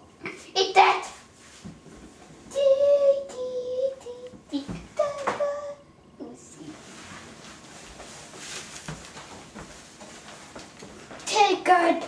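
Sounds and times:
faint rustles: 6.6 - 11.3.

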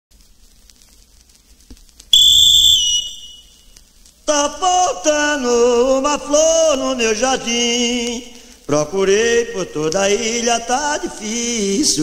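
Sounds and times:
recording hiss and clicks: 0.1 - 12.0
loud high whistle blast: 2.1 - 3.8.

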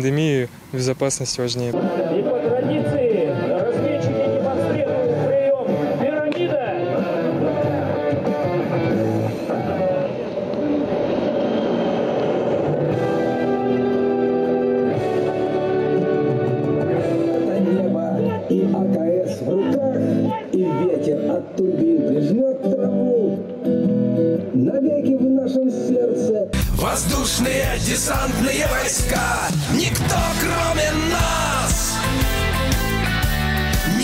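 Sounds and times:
rock music with electric guitar: 1.8 - 34.0.

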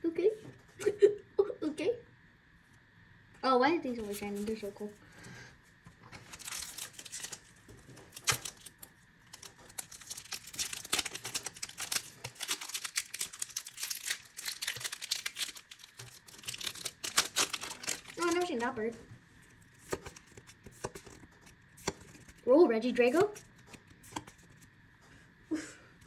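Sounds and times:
foil wrappers crinkling: 3.9 - 4.7, 6.0 - 24.7
foil wrapper snaps: 6.1 - 18.7.

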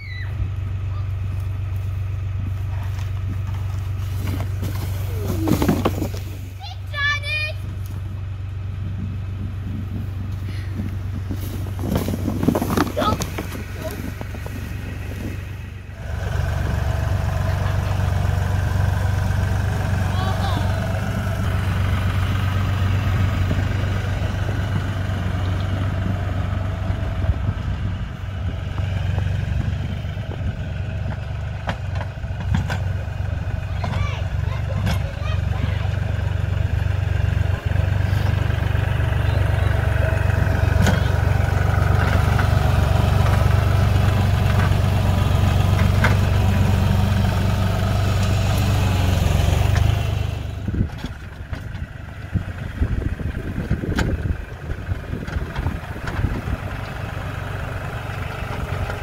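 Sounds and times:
tractor diesel engine running: 0.0 - 59.0.

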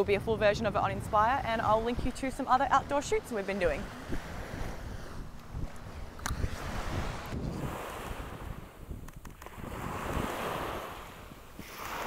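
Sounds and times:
wind rumbling on microphone: 0.0 - 12.0
surf washing onto beach: 1.8 - 12.0.

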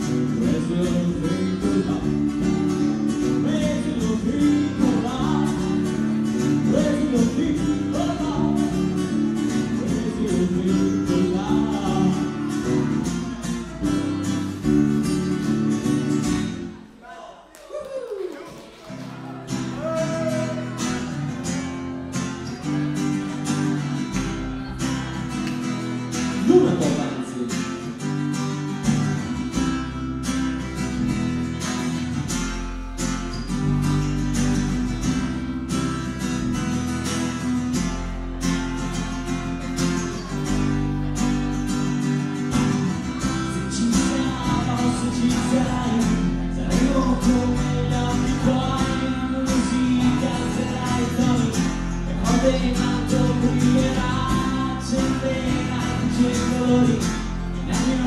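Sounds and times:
electric bass: 0.0 - 16.8, 27.9 - 58.0
strummed acoustic guitar: 0.0 - 16.9, 18.8 - 58.0
man singing: 0.0 - 17.4, 19.5 - 21.7, 26.1 - 28.2, 42.7 - 58.0.

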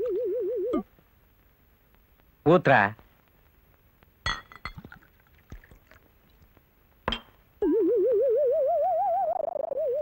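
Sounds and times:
glass bottle clinking glass: 4.3 - 5.0.

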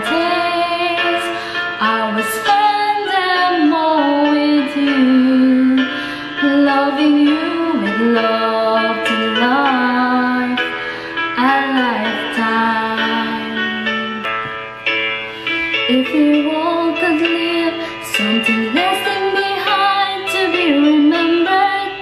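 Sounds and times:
woman singing into a microphone: 0.0 - 14.5, 15.8 - 22.0.

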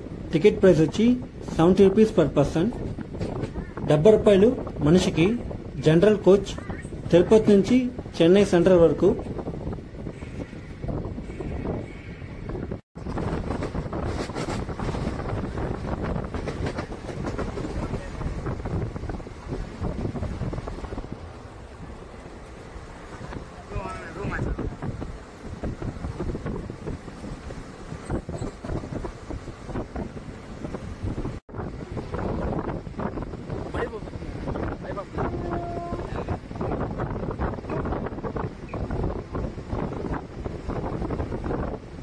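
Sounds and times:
wind buffeting microphone: 0.0 - 42.0
train wheels rumbling: 7.9 - 42.0.

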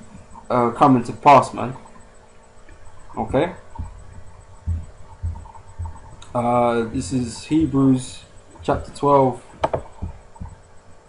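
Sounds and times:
faint steady hum: 0.0 - 11.0
soft low thumps: 1.8 - 11.0.

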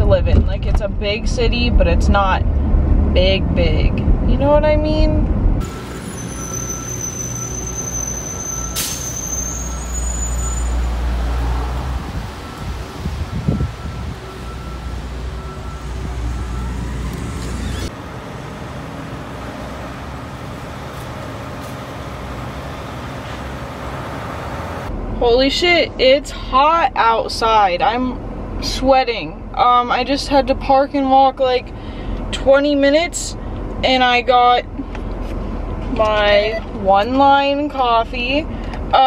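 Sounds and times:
street traffic rumble: 0.0 - 39.0.

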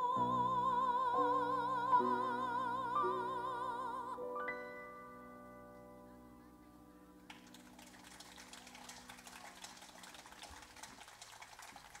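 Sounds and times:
audience applause: 7.3 - 12.0.

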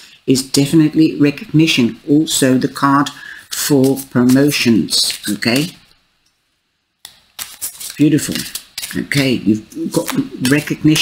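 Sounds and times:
cards being shuffled by hand: 3.1 - 5.8, 7.1 - 11.0.

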